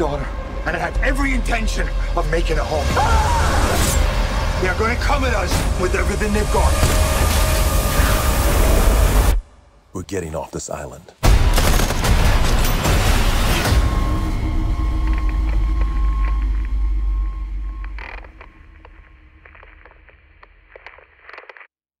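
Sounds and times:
deep rumble: 13.3s - 21.3s
faint metallic creaks and clicks: 17.8s - 21.6s.

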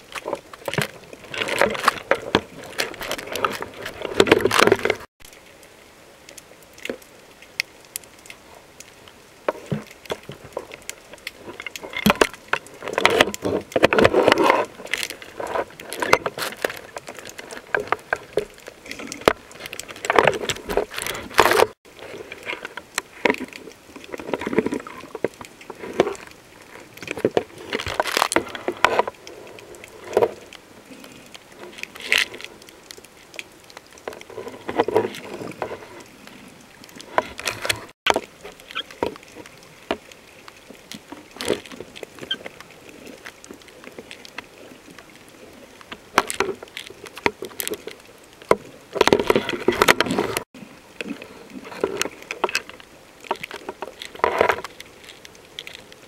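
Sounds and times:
underwater bubbling: 0.0s - 56.0s
small clicks and rattles: 0.1s - 56.0s.

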